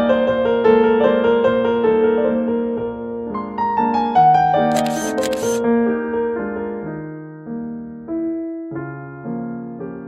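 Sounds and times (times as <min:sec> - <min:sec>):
camera shutter clicks: 0:04.7 - 0:05.6.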